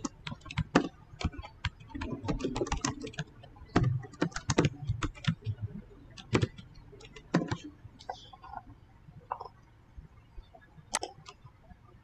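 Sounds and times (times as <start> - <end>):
typing on computer keyboard: 0.0 - 7.7.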